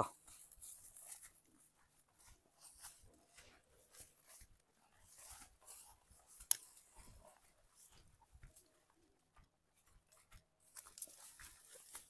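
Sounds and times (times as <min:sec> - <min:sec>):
footsteps through dry grass: 0:00.1 - 0:12.0.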